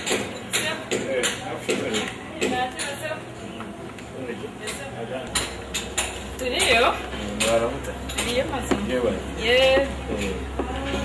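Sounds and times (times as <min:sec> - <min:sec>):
man and woman talking: 0:00.5 - 0:05.4, 0:06.4 - 0:11.0.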